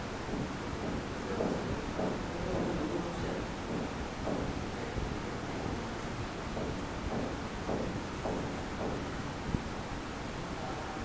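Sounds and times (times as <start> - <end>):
low rumble with hiss: 0.0 - 11.0.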